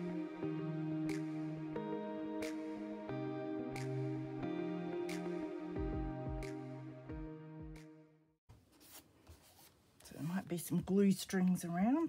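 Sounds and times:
background music: 0.0s - 8.3s
book pages rubbing: 8.6s - 10.3s.

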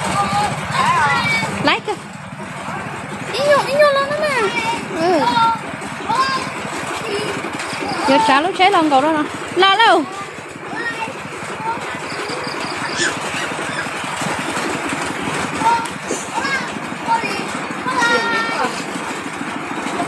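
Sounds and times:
small engine idling: 0.0s - 20.0s.

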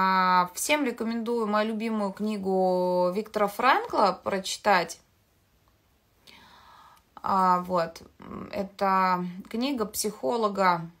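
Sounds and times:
woman breathing in: 6.2s - 7.2s.

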